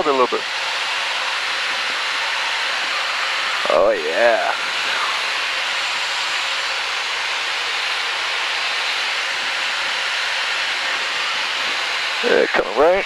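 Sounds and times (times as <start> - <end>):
jet cockpit hiss: 0.0 - 13.0.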